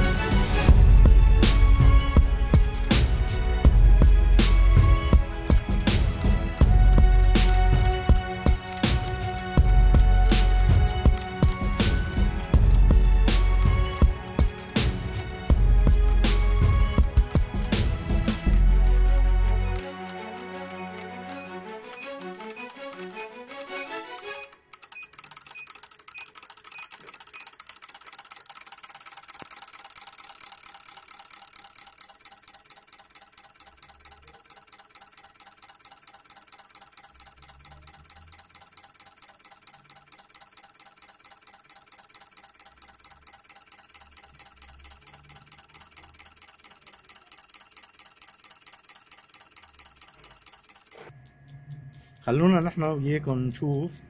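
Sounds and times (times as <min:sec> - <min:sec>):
background music: 0:00.0 - 0:24.8
rapid regular injector clicking: 0:02.2 - 0:54.0.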